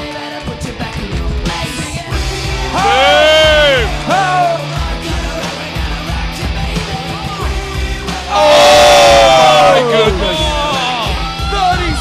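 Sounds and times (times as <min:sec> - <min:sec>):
rock-rap backing music: 0:00.0 - 0:12.0
loud drawn-out exclamation: 0:02.8 - 0:04.4, 0:08.3 - 0:12.0.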